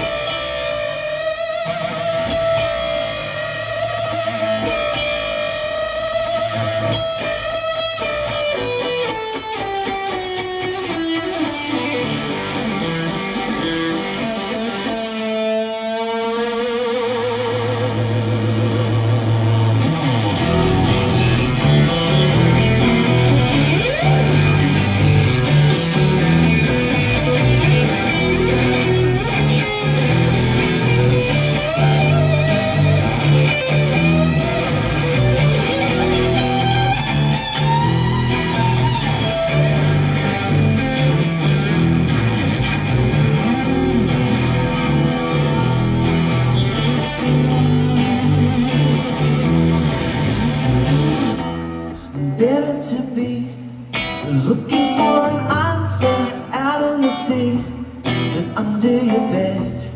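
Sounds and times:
electric guitar through amplifier: 0:00.0 - 0:59.9
heavy low end: 0:17.7 - 0:51.4.

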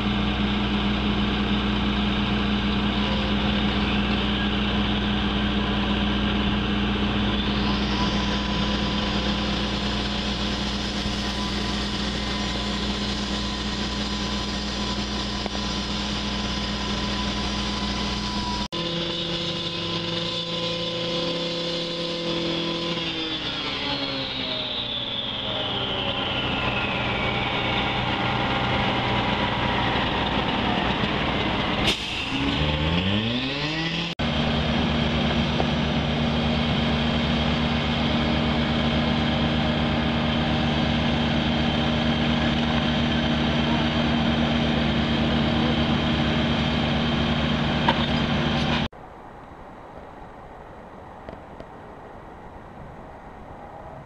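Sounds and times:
engine revving: 0:00.0 - 0:48.9
paving machinery engines running: 0:00.0 - 0:49.0.

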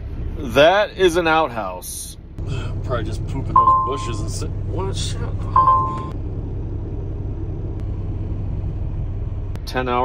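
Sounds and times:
diesel truck engine idling: 0:02.2 - 0:10.0.

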